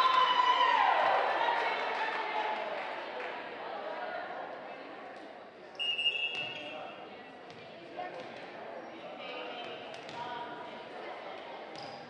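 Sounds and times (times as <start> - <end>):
murmur of spectators: 0.0 - 12.0.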